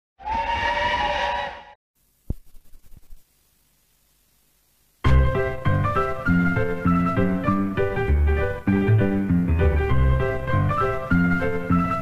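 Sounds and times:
steam locomotive whistle: 0.2 - 1.8.

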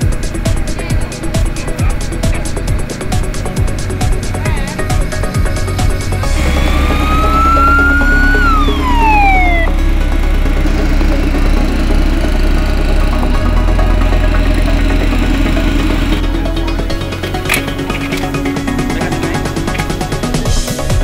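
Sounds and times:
electronic music with bass line: 0.0 - 21.0
ambulance siren wailing: 6.2 - 11.2.

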